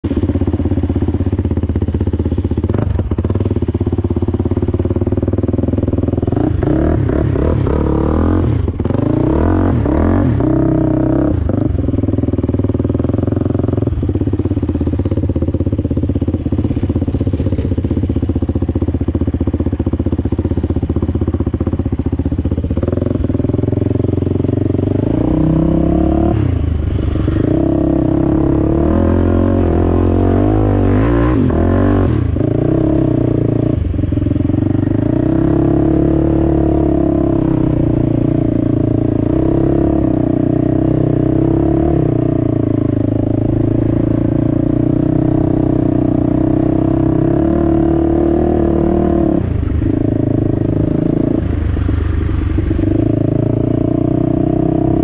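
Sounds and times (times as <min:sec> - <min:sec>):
atv engine revving: 0:00.0 - 0:55.0.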